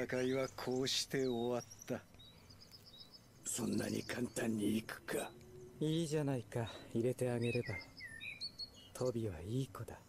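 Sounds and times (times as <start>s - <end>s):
rapid high-pitched chirping: 0.0s - 5.4s.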